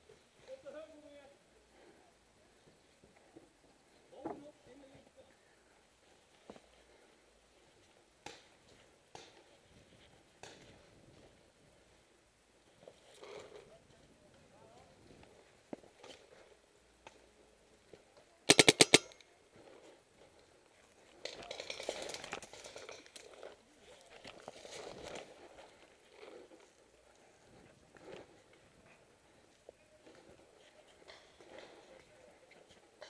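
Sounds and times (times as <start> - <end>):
noisy movement: 5.8 - 33.0
paintball marker firing rapidly: 18.5 - 19.2.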